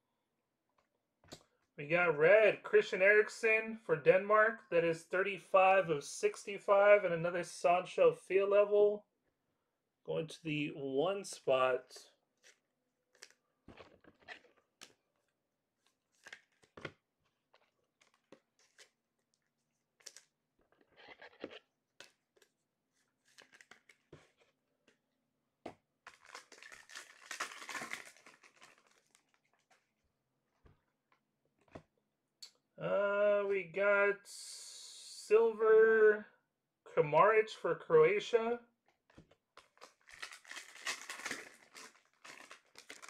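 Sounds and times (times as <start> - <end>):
card pack wrapper tearing: 16.1 - 16.9, 18.0 - 19.0, 20.0 - 20.3, 23.2 - 24.2, 26.0 - 29.8, 39.6 - 43.0.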